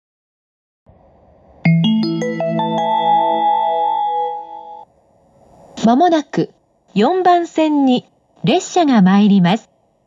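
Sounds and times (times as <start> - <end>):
electronic station chime: 1.7 - 4.9.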